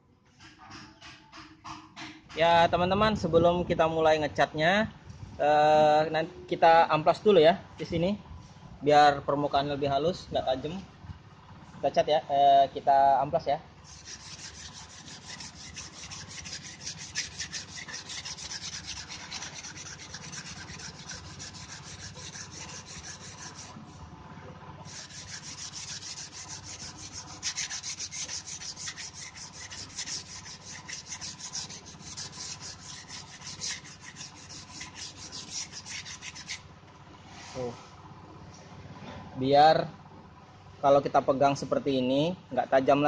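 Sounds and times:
sandpaper rubbing bamboo: 13.8s - 24.0s, 24.8s - 36.6s.

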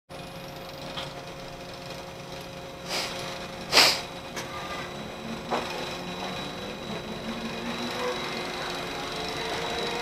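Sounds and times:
machinery humming: 0.1s - 10.0s.

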